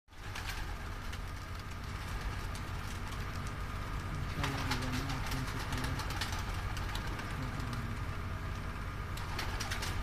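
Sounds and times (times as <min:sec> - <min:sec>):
pigeon wings flapping: 0:00.1 - 0:08.2, 0:09.1 - 0:10.0
steady low rumble: 0:00.1 - 0:10.0.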